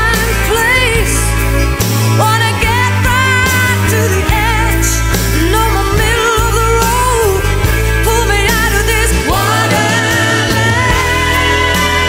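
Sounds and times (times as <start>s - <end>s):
woman singing: 0.0s - 1.4s, 2.2s - 12.0s
pop-rock song: 0.0s - 12.0s.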